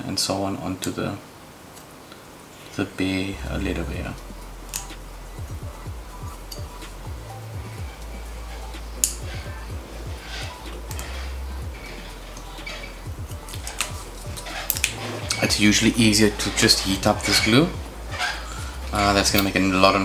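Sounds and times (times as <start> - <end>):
soft background music: 0.0 - 20.0
tweezers scraping glue: 7.7 - 19.6.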